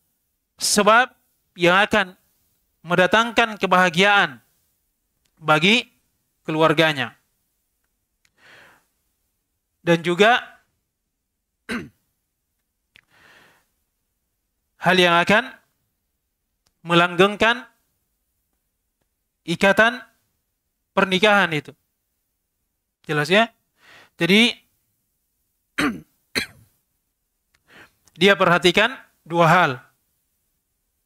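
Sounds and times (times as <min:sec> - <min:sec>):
man clearing his throat: 0:11.7 - 0:12.1, 0:25.8 - 0:26.8.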